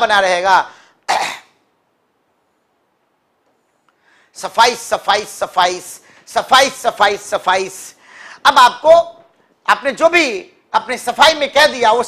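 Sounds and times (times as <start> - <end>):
man coughing: 1.1 - 1.6.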